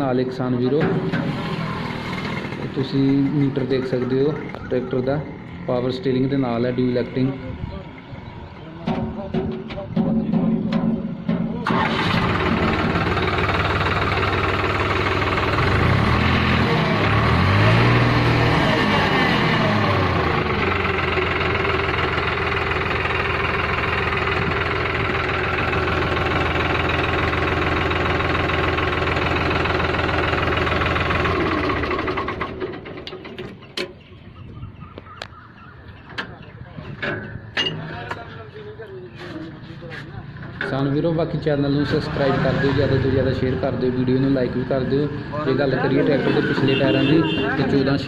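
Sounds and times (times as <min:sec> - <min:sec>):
tractor diesel engine running: 0:00.0 - 0:48.0.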